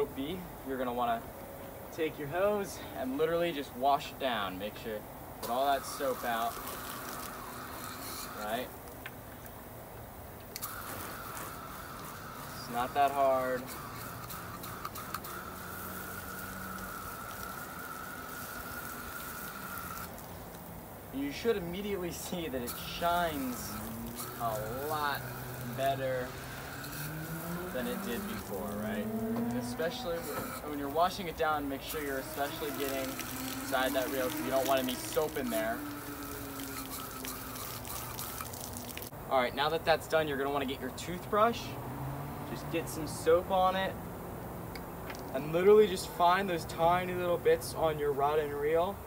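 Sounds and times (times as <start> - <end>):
thin steady whine: 0.0 - 41.6
hose nozzle spraying water: 2.6 - 9.6, 10.3 - 39.2, 45.2 - 48.9.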